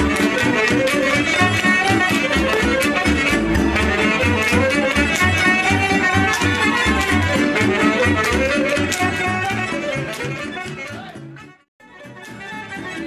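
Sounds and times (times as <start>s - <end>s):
folk band with violin: 0.0s - 13.0s
steady bass beat: 2.6s - 4.9s.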